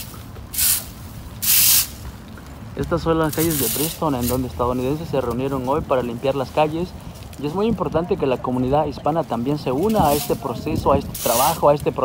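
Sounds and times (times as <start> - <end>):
rake scraping leaves on asphalt: 0.0 - 2.2, 2.8 - 7.6, 9.2 - 12.0.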